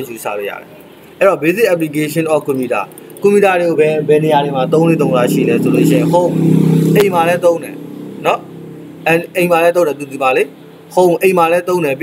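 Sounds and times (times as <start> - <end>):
man speaking: 1.2 - 12.0
long low held tone: 3.4 - 9.5.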